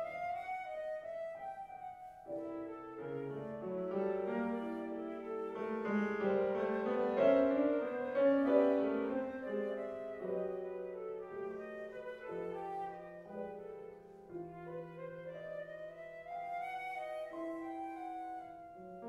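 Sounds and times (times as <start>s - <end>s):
flute long notes: 0.0s - 19.0s
piano chords: 0.0s - 19.0s.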